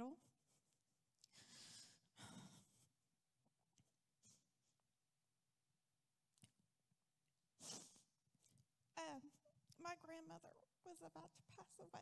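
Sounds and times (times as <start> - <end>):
woman breathing unsteadily: 1.3 - 3.0.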